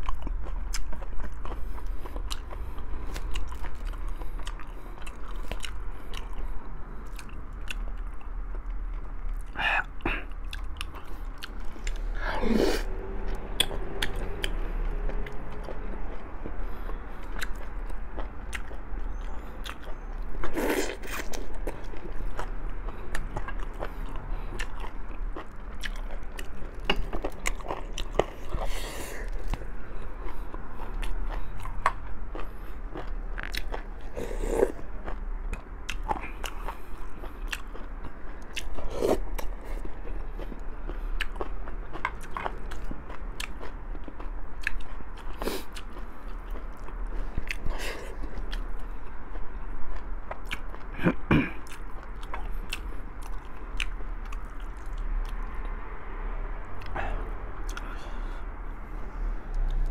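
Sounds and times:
person chewing close to microphone: 0.0 - 55.8, 56.7 - 59.9.

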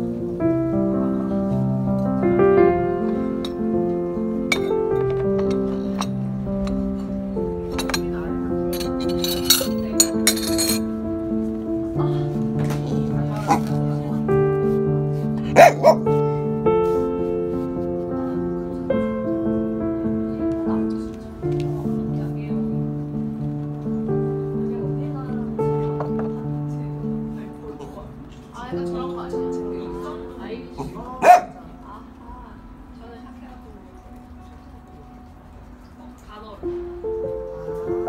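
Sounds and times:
background music: 0.0 - 38.0
small dog barking: 15.5 - 16.1, 31.2 - 31.6.

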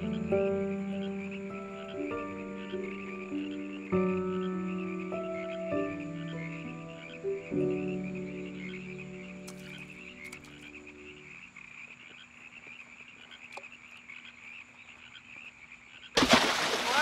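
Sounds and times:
chorus of calling animals: 0.0 - 17.0
faint clicks: 9.4 - 11.4, 12.0 - 14.4.

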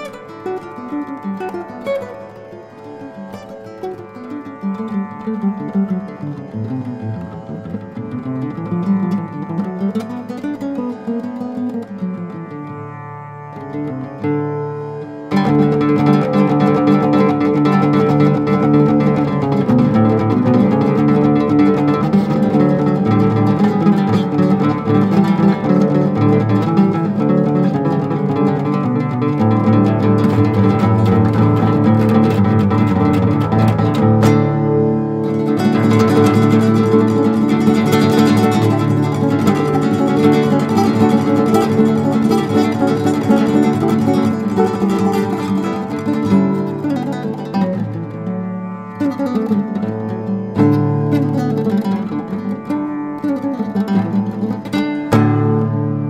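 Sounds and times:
fingerpicked flamenco guitar: 0.0 - 56.0.

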